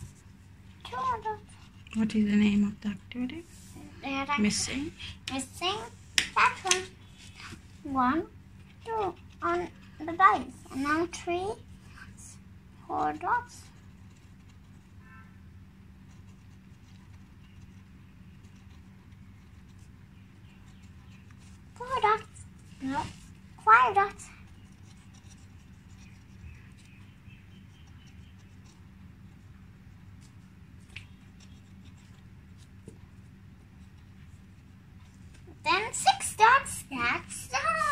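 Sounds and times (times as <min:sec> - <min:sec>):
steady low hum: 0:00.0 - 0:37.9
pencil tapping on paper: 0:06.2 - 0:06.9
pencil scratching on paper: 0:16.0 - 0:28.9.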